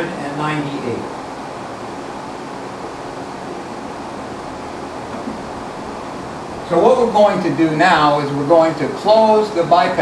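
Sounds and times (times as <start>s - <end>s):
air conditioner running: 0.0s - 10.0s
air moving through ducts: 0.0s - 10.0s.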